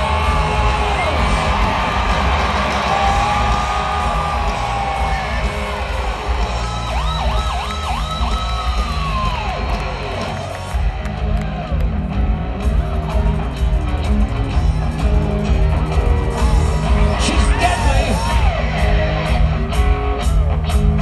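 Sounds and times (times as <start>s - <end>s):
crowd yelling and whooping: 0.0s - 21.0s
drum and bass rumble: 0.0s - 21.0s.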